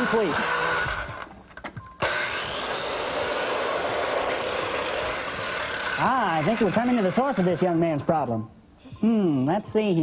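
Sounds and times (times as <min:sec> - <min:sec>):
motorized tool whirring: 0:00.0 - 0:01.4, 0:02.0 - 0:07.7.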